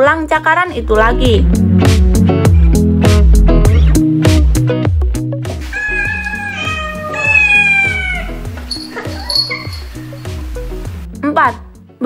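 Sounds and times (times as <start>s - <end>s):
background music with steady beat: 0.0s - 12.0s
cat meowing: 5.6s - 10.4s.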